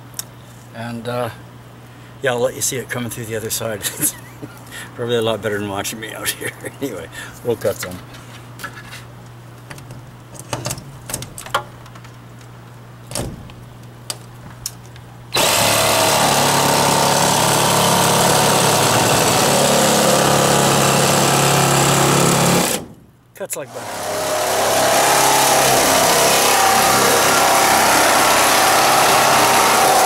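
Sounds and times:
jigsaw cutting plastic panel: 15.4s - 22.9s, 23.7s - 30.0s.

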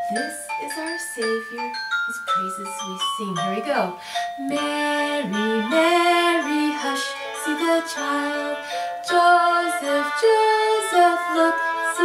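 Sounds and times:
instrumental accompaniment: 0.0s - 12.0s
woman singing gently: 0.0s - 12.0s.

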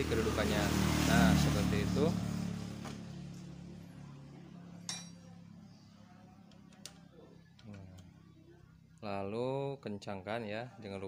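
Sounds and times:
engine hum: 0.0s - 8.8s.

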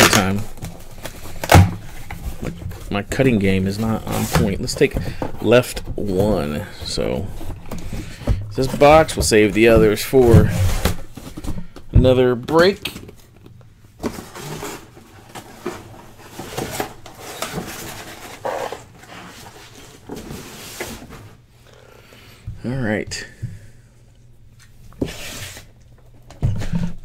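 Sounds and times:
boxes tapping and scraping: 0.0s - 21.4s.

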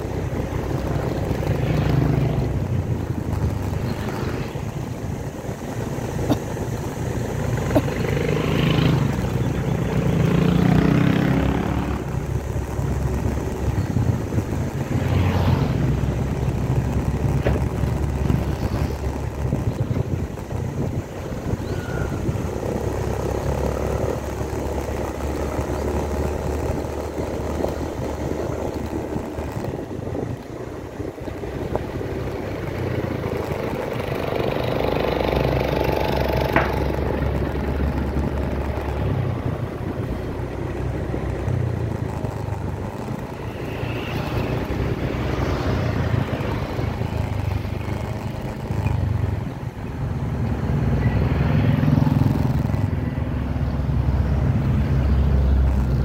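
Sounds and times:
road noise: 0.0s - 56.0s
scooter engine running: 0.0s - 56.0s.

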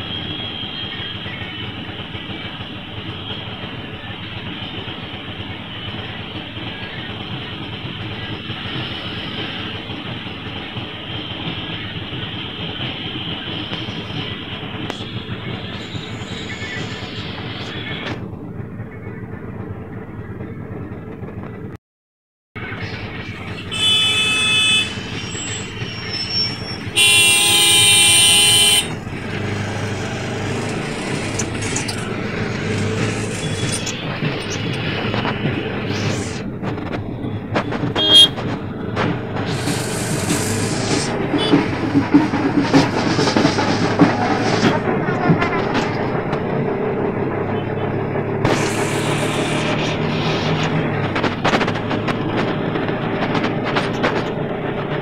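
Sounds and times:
auto-rickshaw engine and road noise: 0.0s - 21.8s, 22.6s - 55.0s
vehicle horns honking: 23.6s - 31.4s, 37.8s - 38.5s, 41.3s - 41.8s
small engine running: 26.9s - 36.4s, 39.3s - 41.5s, 47.2s - 50.7s.

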